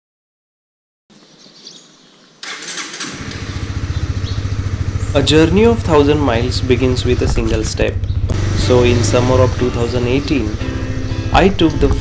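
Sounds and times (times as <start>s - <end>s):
outdoor noise: 1.1s - 12.0s
motorcycle engine running: 2.4s - 12.0s.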